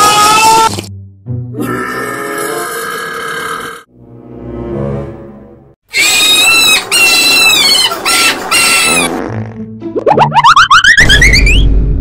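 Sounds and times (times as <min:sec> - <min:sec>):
long burp: 0:01.6 - 0:03.9.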